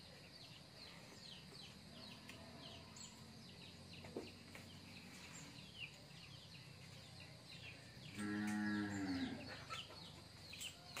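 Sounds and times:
small birds chirping: 0.0 - 11.0
cow mooing: 8.1 - 9.5.

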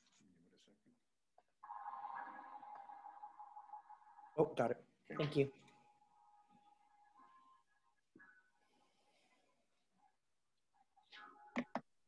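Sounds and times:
faint electronic ringing tone: 1.6 - 4.6, 5.8 - 9.3.

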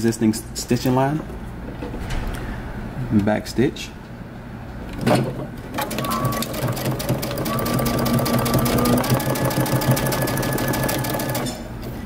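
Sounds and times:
electric sewing machine running: 5.8 - 11.6.

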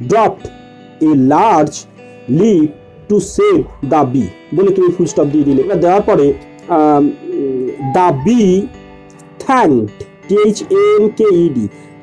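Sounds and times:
background music: 0.0 - 12.0
person speaking slowly: 7.1 - 8.7.

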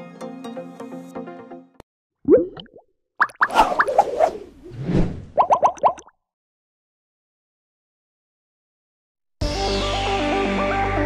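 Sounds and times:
cartoon rising pops: 2.3 - 6.1
swish: 3.5 - 5.4.

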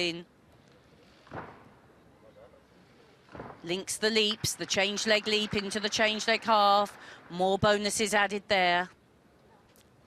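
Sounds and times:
faint arena ambience: 0.0 - 10.0.

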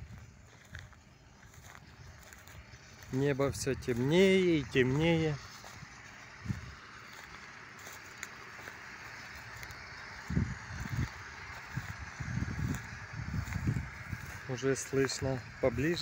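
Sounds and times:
faint outdoor hiss: 0.0 - 16.0.

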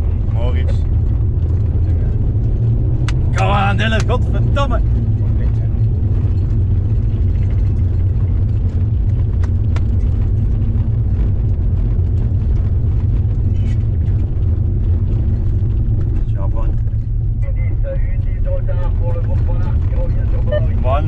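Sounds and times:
car cabin road rumble: 0.0 - 21.0
faint clicks and rattles: 0.7 - 17.4.

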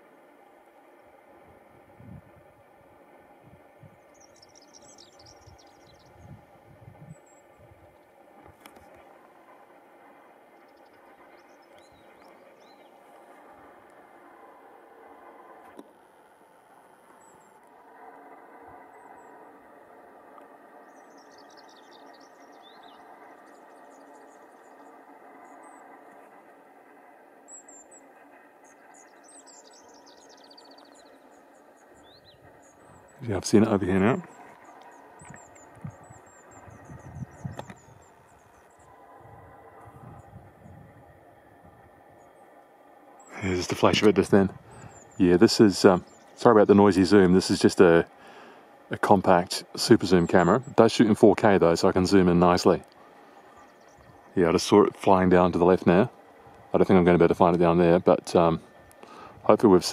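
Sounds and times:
faint steady hum: 0.0 - 59.9
bird high-pitched trills: 3.9 - 6.4, 10.4 - 13.4, 20.7 - 26.4, 27.4 - 59.9.

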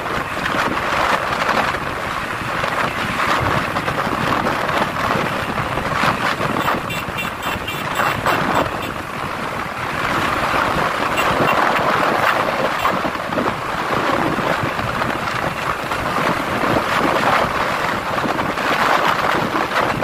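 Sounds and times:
motorcycle running: 0.0 - 20.0
road noise: 0.0 - 20.0
wind rushing over microphone: 0.0 - 20.0.

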